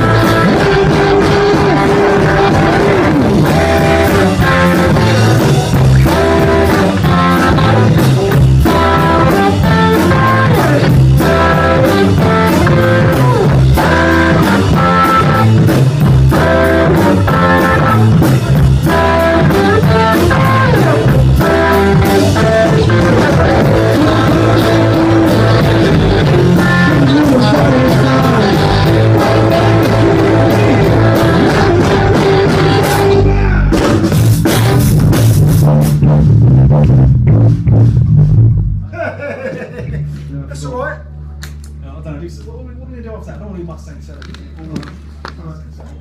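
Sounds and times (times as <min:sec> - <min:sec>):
electric guitar: 0:00.0 - 0:40.5
bass guitar: 0:00.0 - 0:46.0
drums: 0:00.0 - 0:46.0.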